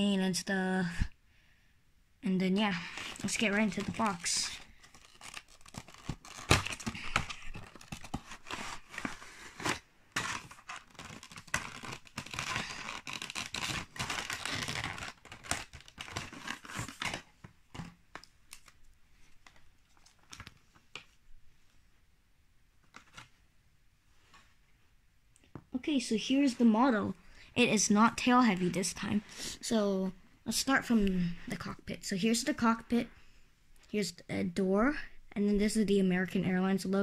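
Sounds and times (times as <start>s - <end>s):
plastic packaging crinkling: 2.7s - 20.9s.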